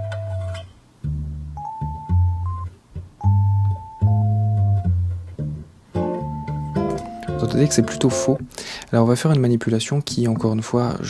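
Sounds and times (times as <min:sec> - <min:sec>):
guitar playing: 0:00.0 - 0:08.6
electric piano: 0:06.0 - 0:08.4.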